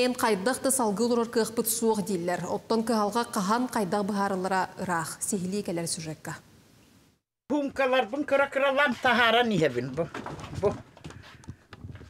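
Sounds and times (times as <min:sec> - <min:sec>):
woman speaking: 0:00.0 - 0:06.4.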